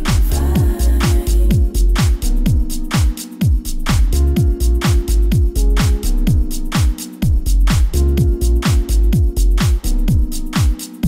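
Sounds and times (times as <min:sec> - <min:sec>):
house music: 0:00.0 - 0:11.0.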